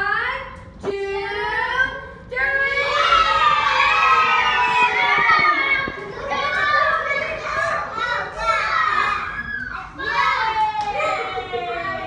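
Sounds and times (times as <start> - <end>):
toddlers playing and calling out: 2.9 - 12.0.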